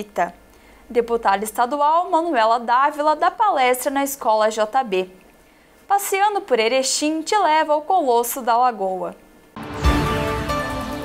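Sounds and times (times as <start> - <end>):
newsreader speaking: 0.0 - 5.2, 5.9 - 9.2
tv ident music: 9.6 - 11.0.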